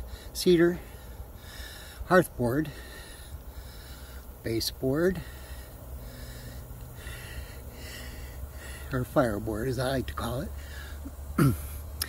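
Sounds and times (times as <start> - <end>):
man breathing heavily: 0.0 - 12.0.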